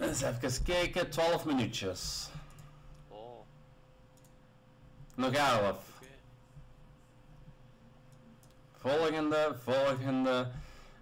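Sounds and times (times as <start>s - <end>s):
computer mouse clicks: 2.5s - 3.0s, 4.1s - 4.4s, 8.1s - 8.6s.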